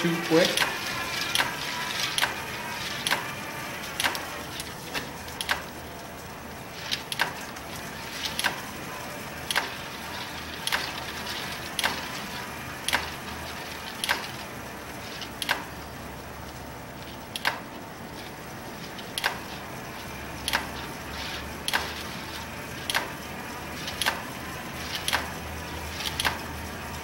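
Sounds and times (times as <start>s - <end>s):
sharp mechanical click: 0.5s - 1.6s, 3.0s - 3.3s, 4.0s - 5.7s, 6.9s - 7.4s, 9.5s - 9.7s, 12.9s - 13.1s, 14.0s - 14.4s, 15.2s - 15.7s, 17.3s - 17.6s, 19.2s - 19.4s, 20.4s - 20.7s, 22.9s - 23.1s, 23.9s - 24.2s, 24.9s - 25.3s, 26.0s - 26.4s.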